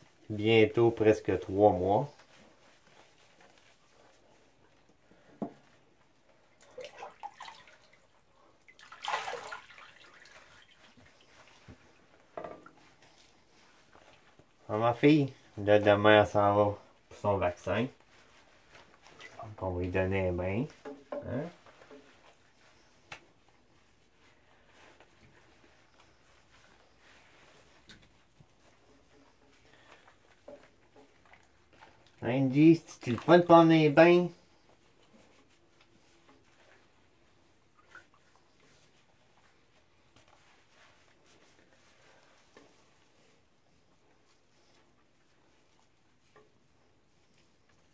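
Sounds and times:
hands rubbing soapy fur: 0:00.0 - 0:47.9.

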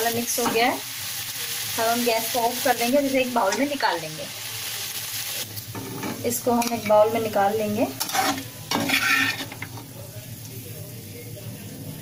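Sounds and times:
metal spatula scraping a pan: 0:07.8 - 0:09.8.

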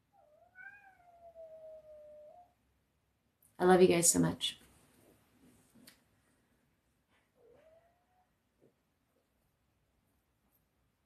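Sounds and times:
cat meowing: 0:00.2 - 0:02.6, 0:07.4 - 0:08.3.

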